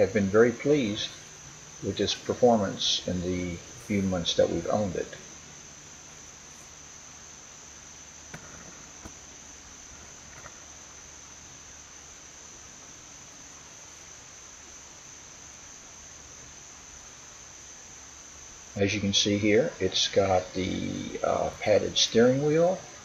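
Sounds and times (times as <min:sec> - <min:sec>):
insects trilling: 0:00.0 - 0:23.0.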